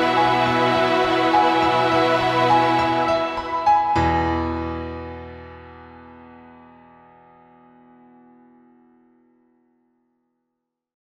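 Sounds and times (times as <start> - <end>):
held music chord: 0.0 - 6.4.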